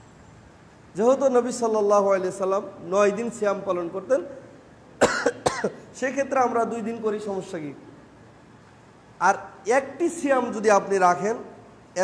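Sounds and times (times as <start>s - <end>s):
person coughing: 5.0s - 5.9s.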